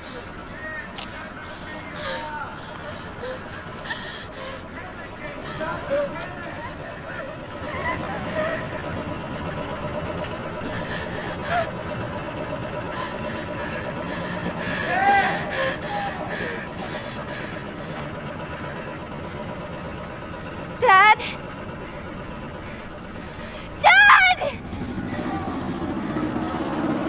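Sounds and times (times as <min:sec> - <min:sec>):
faint voices: 0:00.0 - 0:19.5
steady background hum: 0:00.0 - 0:27.0.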